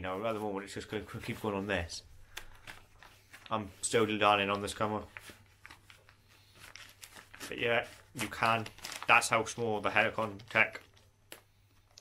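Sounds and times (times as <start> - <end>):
plastic bag crinkling: 4.6 - 11.1.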